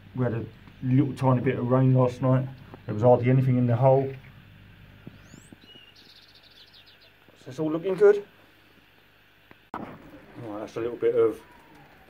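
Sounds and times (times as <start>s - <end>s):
bird chirp: 5.1s - 7.3s.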